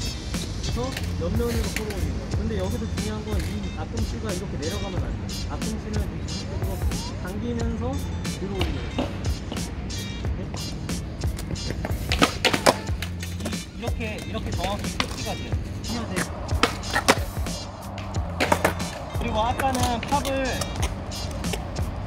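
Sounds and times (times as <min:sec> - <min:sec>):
background music: 0:00.0 - 0:22.0
skateboard clacking on concrete: 0:01.0 - 0:02.1, 0:11.3 - 0:21.8.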